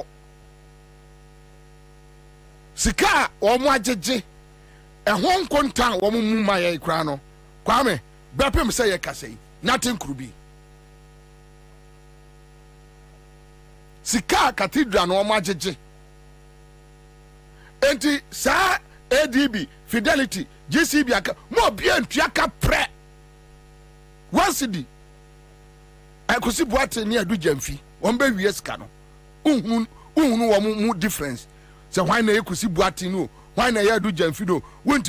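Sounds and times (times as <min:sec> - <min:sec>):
electrical mains hum: 0:00.0 - 0:35.0
man speaking: 0:02.8 - 0:04.2, 0:05.1 - 0:10.4, 0:14.0 - 0:15.8, 0:17.8 - 0:22.9, 0:24.3 - 0:24.9, 0:26.3 - 0:28.9, 0:29.5 - 0:35.0.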